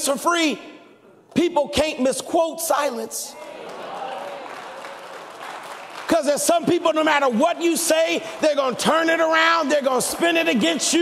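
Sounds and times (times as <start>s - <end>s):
congregation applauding: 3.4s - 11.0s.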